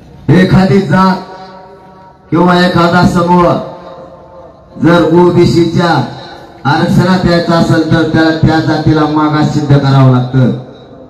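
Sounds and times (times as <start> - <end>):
man chanting through a microphone: 0.3 - 11.0.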